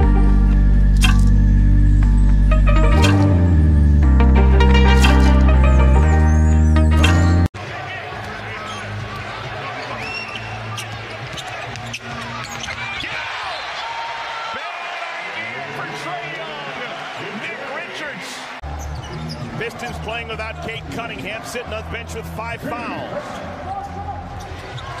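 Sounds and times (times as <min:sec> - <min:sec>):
crowd noise: 0:04.7 - 0:25.0
sneakers squeaking on court: 0:08.1 - 0:13.7, 0:18.7 - 0:19.6.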